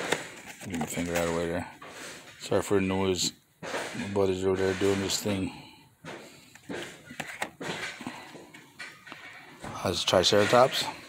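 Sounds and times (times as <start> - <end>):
plastic packaging clicks and crackles: 0.0 - 1.6.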